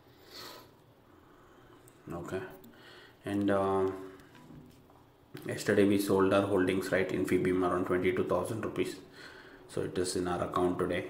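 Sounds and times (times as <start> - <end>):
short breath: 2.7 - 3.2, 9.1 - 9.7.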